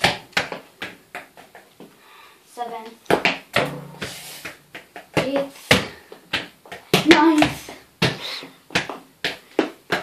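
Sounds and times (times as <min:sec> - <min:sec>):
ball knocking on floor and furniture: 0:03.1 - 0:10.0.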